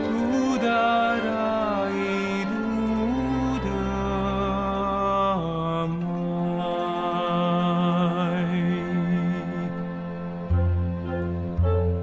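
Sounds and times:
man singing long notes: 0:00.0 - 0:10.4
soft musical accompaniment: 0:00.0 - 0:12.0.

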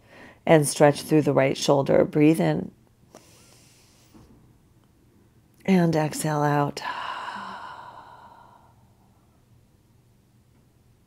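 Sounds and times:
woman exhaling slowly: 0:06.8 - 0:09.3.

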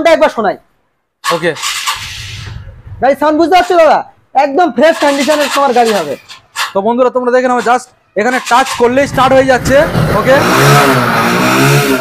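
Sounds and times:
motorcycle engine cranking: 0:01.2 - 0:02.3, 0:08.3 - 0:09.8.

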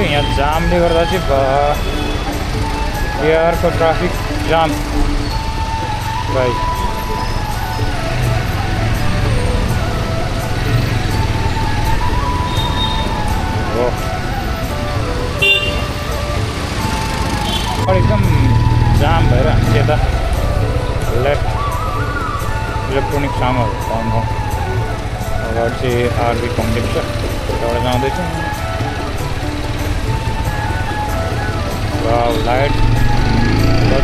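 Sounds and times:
motorcycle engine: 0:00.0 - 0:34.0
street music: 0:00.0 - 0:34.0
street traffic: 0:00.0 - 0:34.0
voices: 0:00.0 - 0:34.0
motorcycle horn toot: 0:15.4 - 0:16.0.

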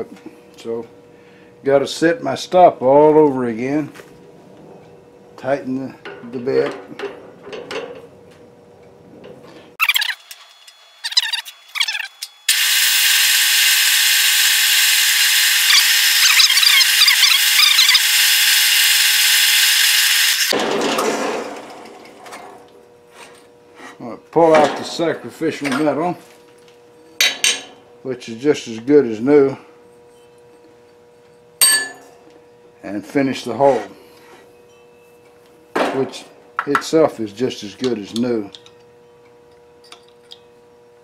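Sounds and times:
drill chuck squeaking: 0:09.8 - 0:10.4, 0:11.0 - 0:20.5
drill press cutting metal: 0:09.8 - 0:20.6.

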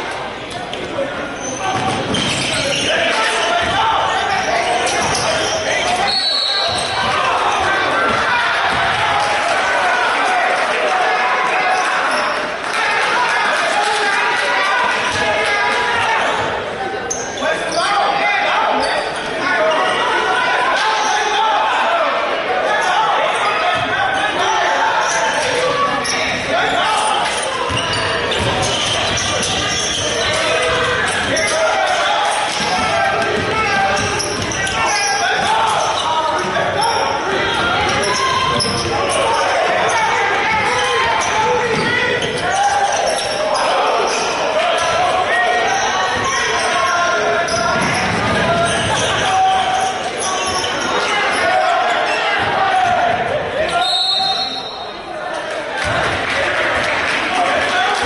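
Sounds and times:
players' voices echoing: 0:00.0 - 0:58.0.

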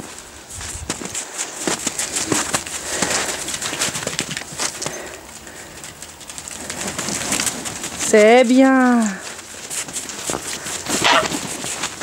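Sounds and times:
scuffling on wet ground: 0:00.0 - 0:12.0
geese flapping wings: 0:00.7 - 0:12.0.

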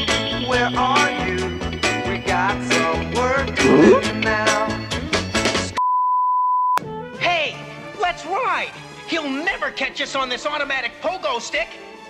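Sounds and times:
steady electronic beep: 0:03.6 - 0:04.1
upbeat music: 0:03.6 - 0:04.1.

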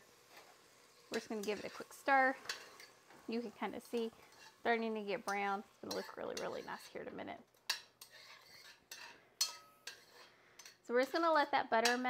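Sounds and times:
spoon scraping pot: 0:00.3 - 0:10.8
spoon clinking on pot: 0:07.6 - 0:10.8.

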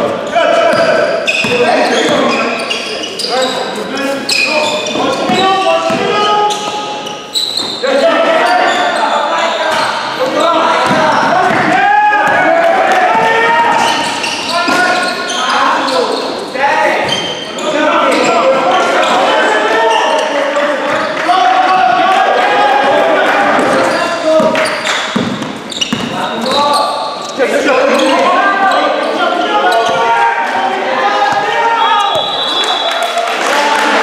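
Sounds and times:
basketball bouncing on hall floor: 0:00.0 - 0:02.7, 0:04.7 - 0:07.8, 0:09.7 - 0:15.1, 0:22.8 - 0:26.7
players calling out: 0:00.0 - 0:34.0.

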